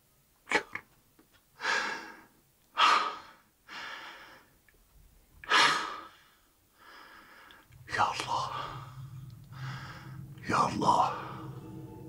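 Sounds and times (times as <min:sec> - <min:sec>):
man breathing heavily: 0:01.6 - 0:04.6, 0:05.4 - 0:12.0.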